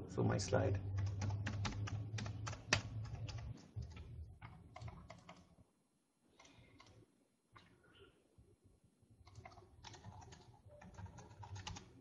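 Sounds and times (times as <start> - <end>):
computer keyboard typing: 0.9 - 5.5, 6.4 - 7.0, 9.2 - 12.0.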